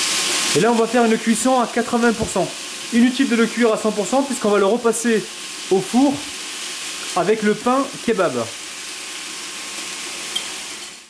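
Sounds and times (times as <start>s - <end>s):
chicken sizzling in a frying pan: 0.0s - 11.0s.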